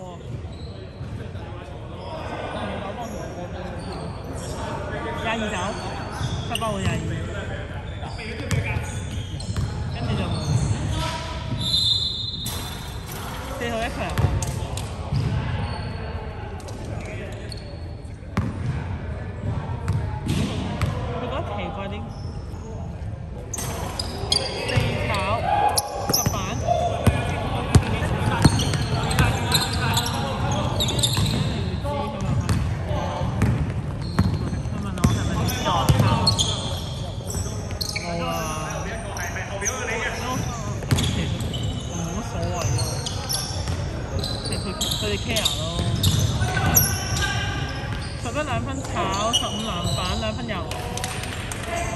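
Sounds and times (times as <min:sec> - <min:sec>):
players' voices and calls: 0:00.0 - 0:51.9.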